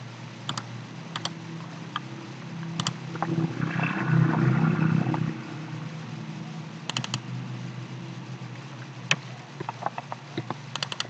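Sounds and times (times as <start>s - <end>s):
steady low hum: 0.0s - 11.0s
computer mouse clicks: 0.5s - 2.0s, 2.8s - 3.0s, 6.9s - 7.2s, 9.1s - 11.0s
rushing noise: 1.7s - 9.0s.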